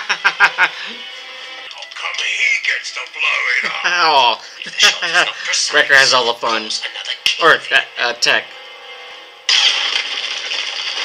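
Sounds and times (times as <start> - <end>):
faint music: 0.0 - 9.6.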